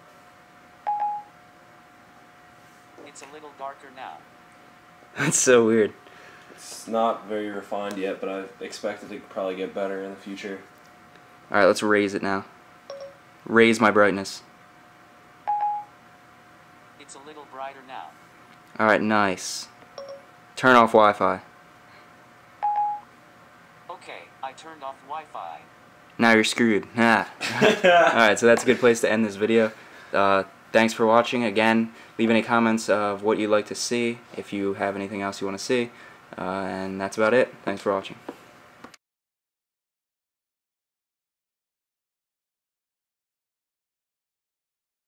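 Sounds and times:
short electronic beep: 0:20.0 - 0:20.2.

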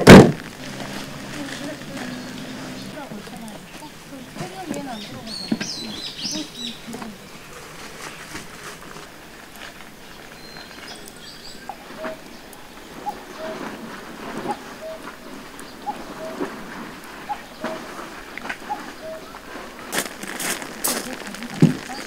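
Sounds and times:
rain on foliage and gravel: 0:00.0 - 0:22.0
short animal calls: 0:00.4 - 0:07.8.

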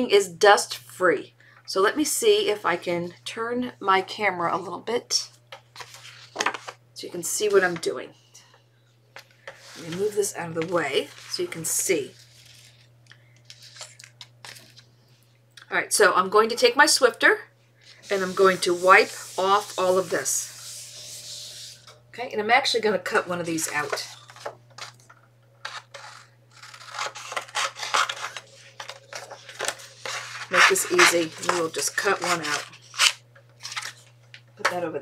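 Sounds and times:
paper rustling and sliding: 0:05.7 - 0:06.8, 0:09.4 - 0:11.4, 0:12.1 - 0:14.9, 0:25.6 - 0:34.1.

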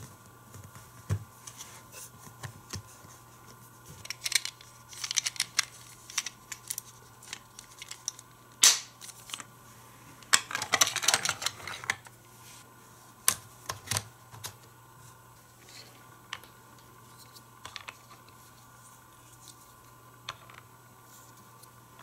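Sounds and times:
plastic parts clicking together: 0:04.0 - 0:09.5.

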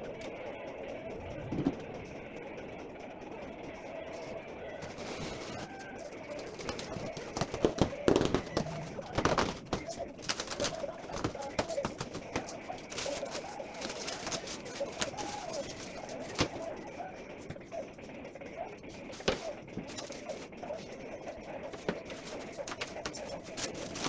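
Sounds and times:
bird cooing: 0:00.0 - 0:24.0
cardboard box and foam rustling: 0:04.8 - 0:16.6, 0:19.0 - 0:20.5, 0:21.7 - 0:24.0.

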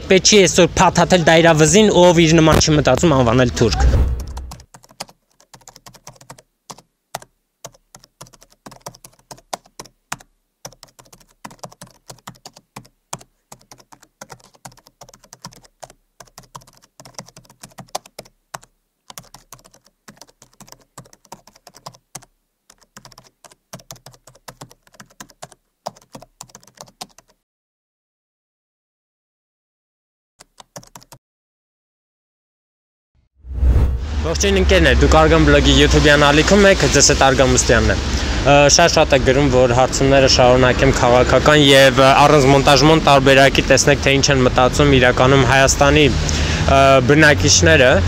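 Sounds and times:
keyboard typing clicks: 0:04.2 - 0:27.4, 0:30.4 - 0:31.2.

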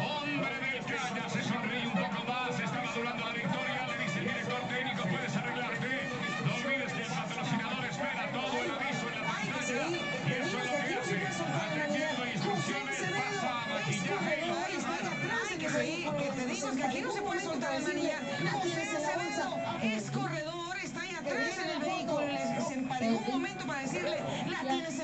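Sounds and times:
music playing: 0:00.0 - 0:25.0
voices talking over one another: 0:00.0 - 0:25.0.

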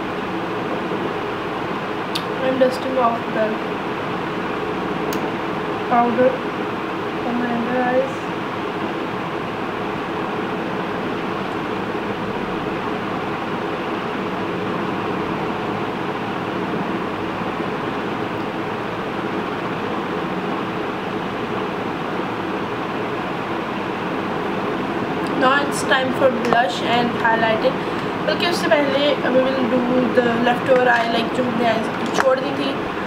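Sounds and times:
steady hum and hiss: 0:00.0 - 0:33.0.

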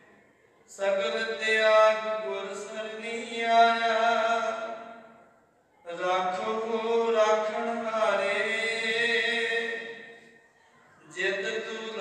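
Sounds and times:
man chanting a prayer: 0:00.7 - 0:05.2, 0:05.9 - 0:10.2, 0:11.0 - 0:12.0.

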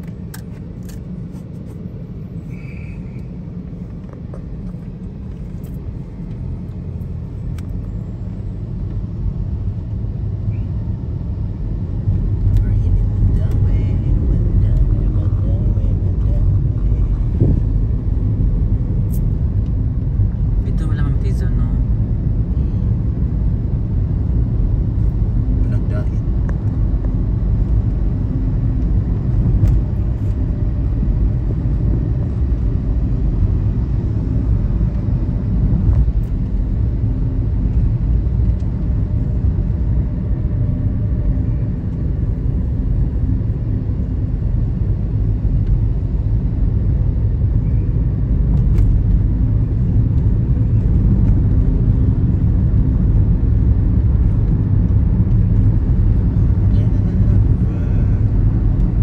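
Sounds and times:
car engine rumble: 0:00.0 - 0:59.0
road noise: 0:00.0 - 0:59.0.

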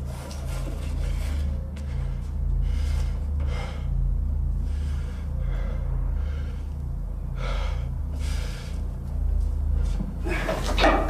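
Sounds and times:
low droning music: 0:00.0 - 0:11.0
man breathing hard: 0:01.2 - 0:10.8.

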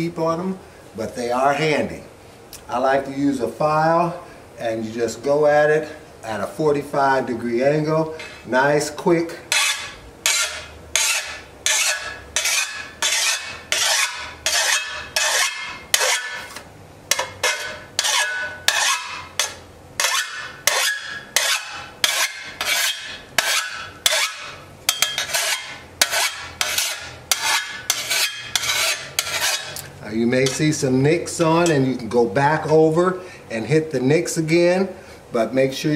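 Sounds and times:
hand file rasping on metal blade: 0:09.5 - 0:29.8.

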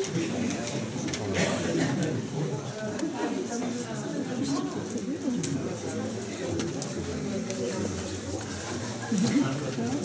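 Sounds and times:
chatter of people talking: 0:00.0 - 0:10.0.

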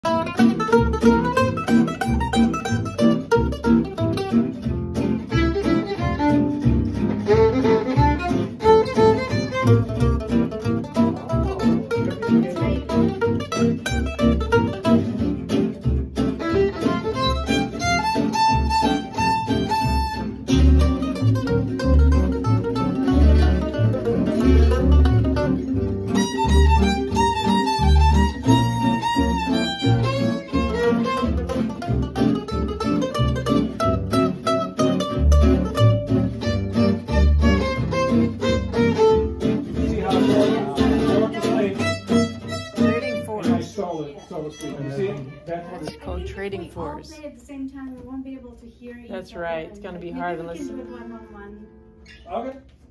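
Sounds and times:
upright bass: 0:00.0 - 0:47.3
strummed acoustic guitars: 0:00.0 - 0:52.9
violin solo: 0:05.2 - 0:10.5, 0:16.2 - 0:46.0.

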